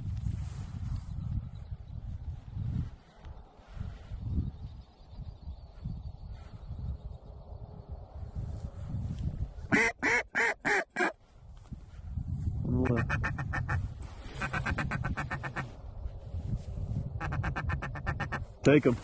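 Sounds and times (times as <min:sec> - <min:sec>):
duck call clucks: 0:09.7 - 0:11.2, 0:12.8 - 0:13.8, 0:14.4 - 0:15.7, 0:17.2 - 0:18.4
duck call quacks: 0:09.7 - 0:11.2, 0:12.8 - 0:13.8, 0:14.4 - 0:15.7, 0:17.2 - 0:18.4.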